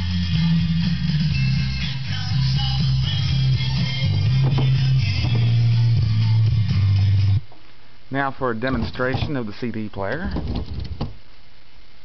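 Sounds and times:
pop song through speakers: 0.0 - 7.6.

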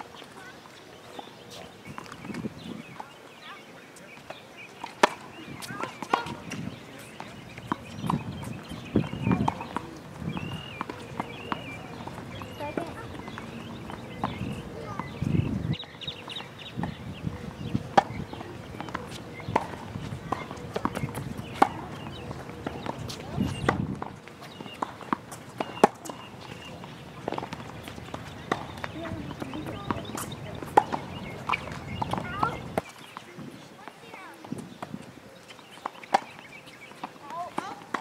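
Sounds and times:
murmuring voices: 2.6 - 38.0.

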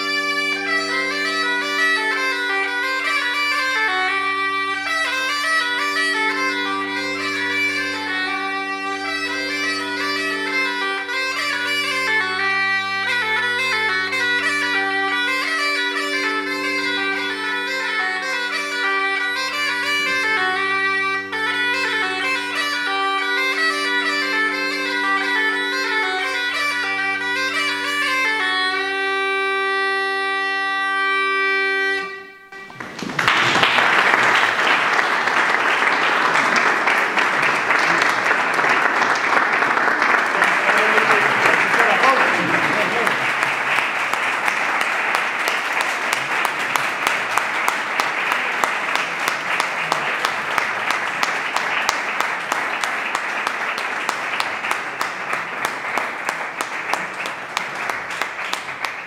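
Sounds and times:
audience applauding: 0.0 - 28.8, 32.5 - 59.0
bagpipe playing: 0.0 - 59.0.

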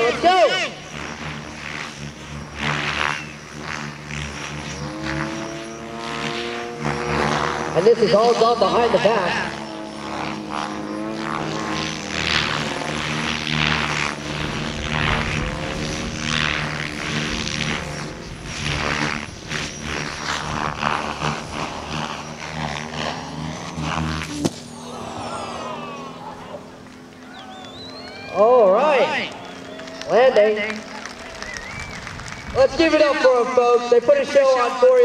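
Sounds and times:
model aircraft engine drone: 0.0 - 35.0.

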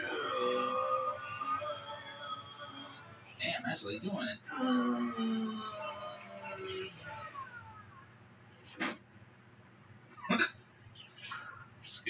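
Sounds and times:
cartoon voices from television: 0.0 - 9.0, 10.2 - 12.0.

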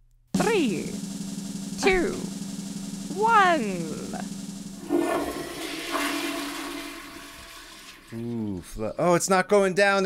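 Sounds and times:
toilet flushing: 4.4 - 9.2.

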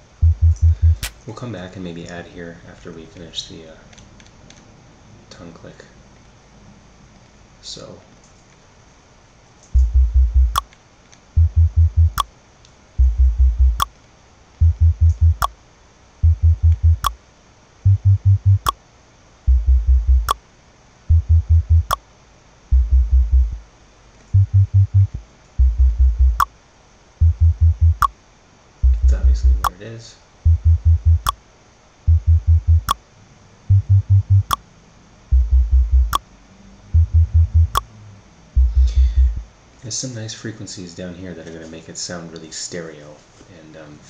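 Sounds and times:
deep bass notes: 0.0 - 1.1, 9.8 - 10.6, 11.4 - 12.2, 13.0 - 13.9, 14.6 - 15.5, 16.2 - 17.1, 17.9 - 18.7, 19.5 - 20.4, 21.1 - 22.0, 22.7 - 23.6, 24.4 - 26.4, 27.2 - 28.1, 28.8 - 29.7, 30.5 - 31.3, 32.1 - 33.0, 33.7 - 34.6, 35.3 - 36.2, 36.9 - 37.9, 38.6 - 39.5
tongue-click sample: 17.9 - 18.8, 34.4 - 34.6.

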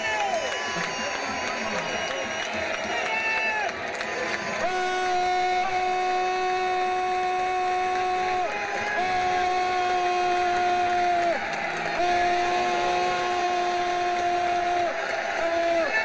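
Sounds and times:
stadium crowd noise: 0.0 - 16.0
marching band brass long note: 4.2 - 16.0.

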